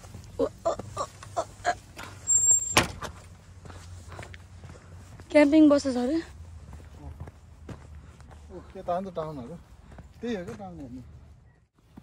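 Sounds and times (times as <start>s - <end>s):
scuffing footsteps: 3.2s - 11.0s, 11.7s - 12.0s.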